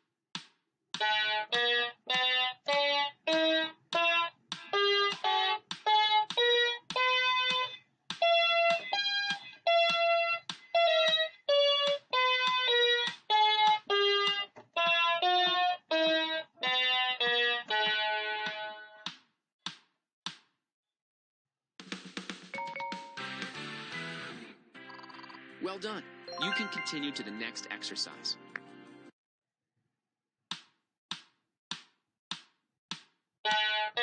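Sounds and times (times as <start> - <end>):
electronic keyboard scale: 26.3 - 28.4.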